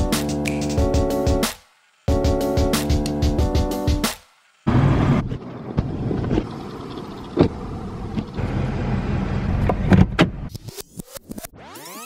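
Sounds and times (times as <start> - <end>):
car low rumble: 4.7 - 10.5.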